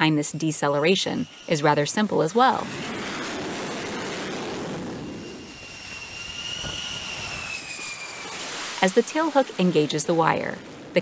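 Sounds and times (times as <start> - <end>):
jet engine rush: 0.0 - 11.0
jet engine whine dropping in pitch: 0.0 - 11.0.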